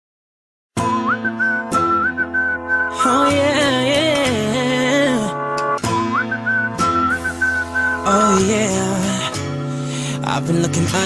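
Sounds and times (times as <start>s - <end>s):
background pop music: 0.8s - 11.0s.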